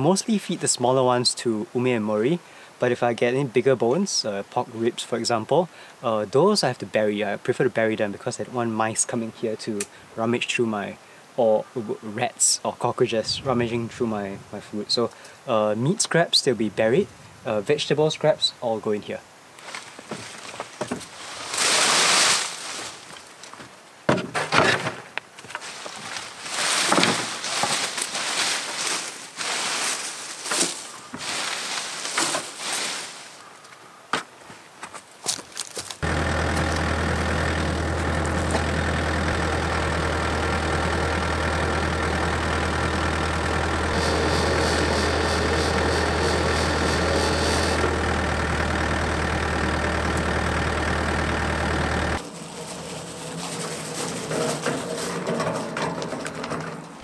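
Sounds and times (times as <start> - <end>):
leafy cuttings rustling: 19.6 - 23.7, 25.4 - 33.7, 35.0 - 50.8, 52.2 - 56.2
crane truck engine running: 36.0 - 55.3.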